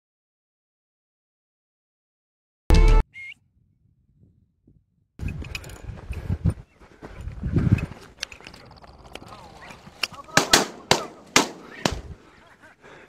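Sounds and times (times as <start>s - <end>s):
wind thumps on microphone: 4.1s - 8.1s
footsteps on rocky ground: 4.7s - 10.6s.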